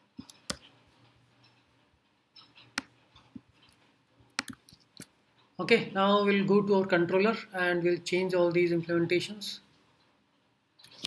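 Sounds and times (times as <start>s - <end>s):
computer key clicks: 4.3s - 4.8s.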